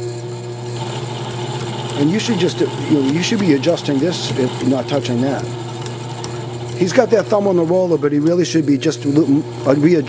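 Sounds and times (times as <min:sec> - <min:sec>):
winding machine hum: 0:00.0 - 0:10.0.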